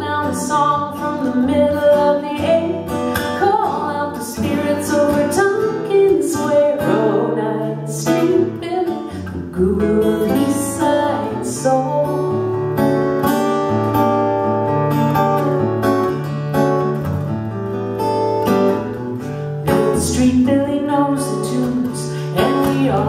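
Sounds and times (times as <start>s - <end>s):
person singing: 0.0s - 12.6s, 19.6s - 23.0s
acoustic guitar playing: 0.0s - 23.0s.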